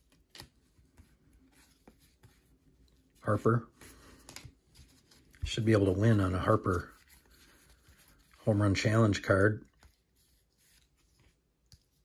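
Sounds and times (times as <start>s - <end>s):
cards sliding through hands: 3.7s - 8.4s.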